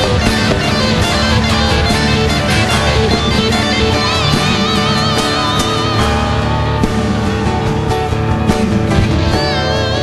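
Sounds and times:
drum kit steady beat: 0.0 - 10.0
live band playing: 0.0 - 10.0.

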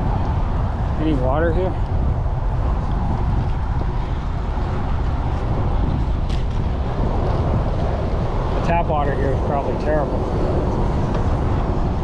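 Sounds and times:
highway traffic noise: 0.0 - 12.0
wind rumble on microphone: 0.0 - 12.0.

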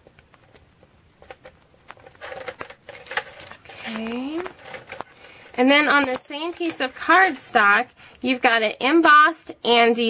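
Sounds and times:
plastic sheet rustling: 1.3 - 8.5.

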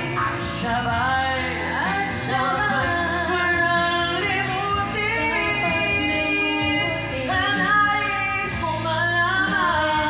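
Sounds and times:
karaoke backing track: 0.0 - 10.0
woman and man singing duet: 0.0 - 10.0.

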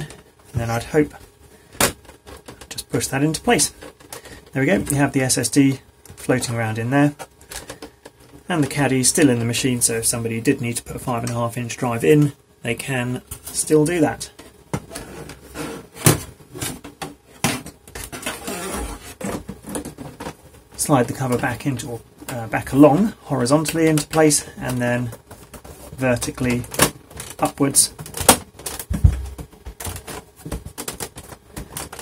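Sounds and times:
plastic panel clacks and scrapes: 14.4 - 21.4
heavy plastic thump: 28.1 - 30.8.

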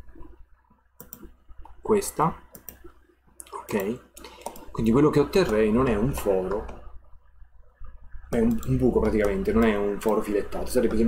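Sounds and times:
computer mouse clicking: 1.0 - 1.8, 2.4 - 6.9, 8.3 - 11.0.

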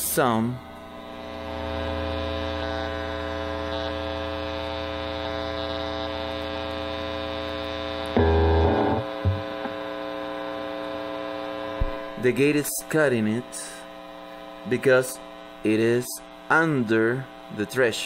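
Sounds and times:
guitar amplifier hum and buzz: 0.0 - 18.0
amplifier noise burst: 7.5 - 17.6.

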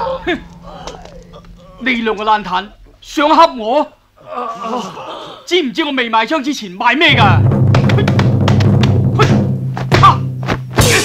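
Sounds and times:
held low musical note: 0.0 - 4.2.

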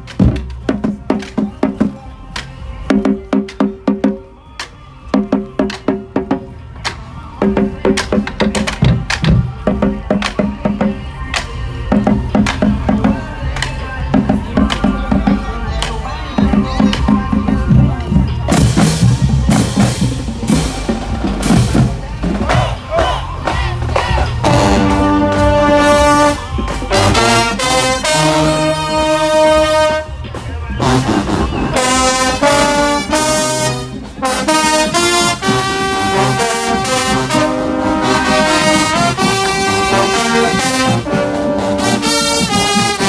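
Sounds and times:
marching bass drums: 0.0 - 43.0
group shouting a call: 22.4 - 27.6.

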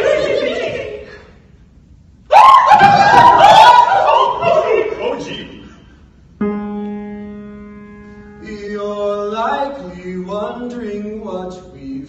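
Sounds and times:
piano note ringing: 6.4 - 9.2.

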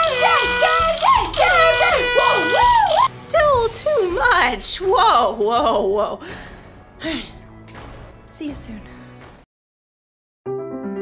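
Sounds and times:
handheld horn blaring: 0.0 - 3.1
rattle shaking: 0.0 - 3.1
woman whooping: 0.0 - 3.1.

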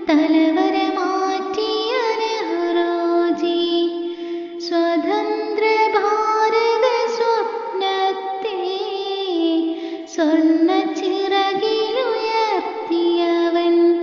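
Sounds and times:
child singing: 0.0 - 14.0.

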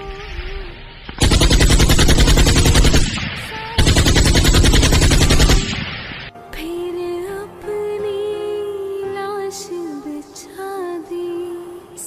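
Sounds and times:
machine-gun fire: 1.2 - 6.3.

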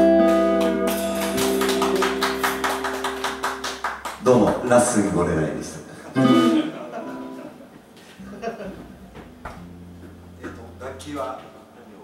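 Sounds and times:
electric guitar note held: 8.2 - 11.8.

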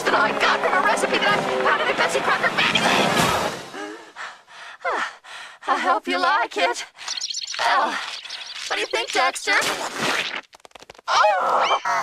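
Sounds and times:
person speaking: 8.7 - 9.8.

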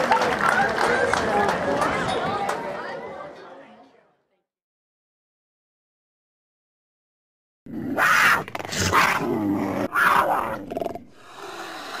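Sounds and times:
big cat roaring: 7.7 - 12.0.

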